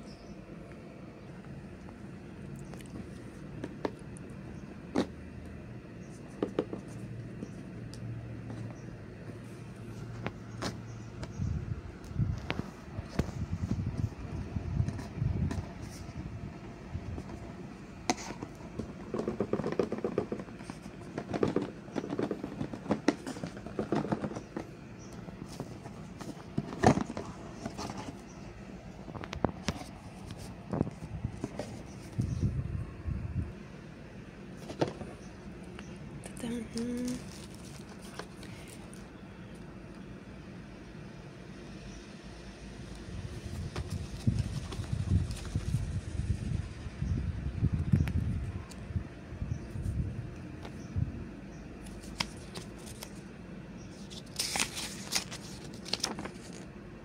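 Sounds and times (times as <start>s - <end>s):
low steady hum: 0.0s - 57.0s
cardboard box being handled: 18.1s - 28.3s, 29.5s - 32.4s, 36.7s - 38.8s, 43.4s - 45.8s.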